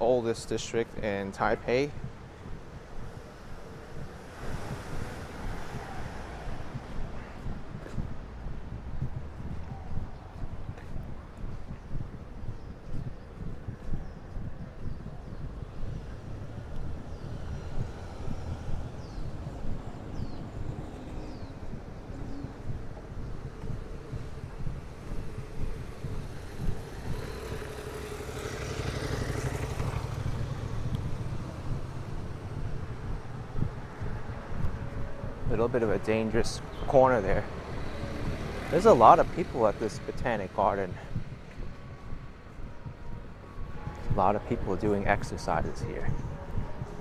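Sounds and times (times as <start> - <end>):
low traffic rumble: 0.0 - 47.0
vehicle passing by: 23.8 - 35.2, 37.1 - 44.8.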